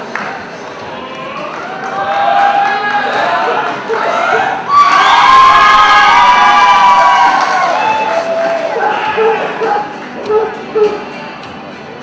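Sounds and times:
spectators cheering and shouting: 0:00.8 - 0:11.1.

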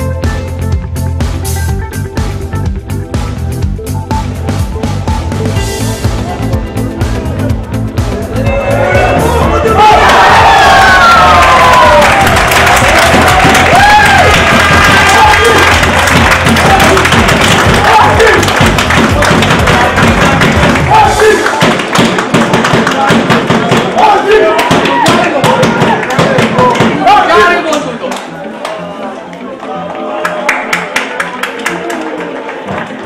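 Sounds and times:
background music: 0:00.0 - 0:33.0
crowd cheering and shouting: 0:08.0 - 0:33.0.

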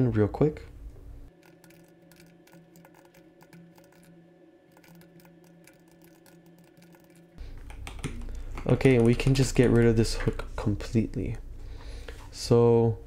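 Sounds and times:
low steady hum: 0:00.0 - 0:13.0
computer keyboard typing: 0:01.3 - 0:04.1, 0:04.7 - 0:10.0.

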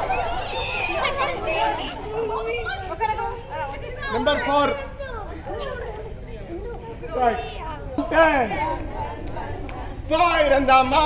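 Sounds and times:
group chatter: 0:00.0 - 0:11.0.

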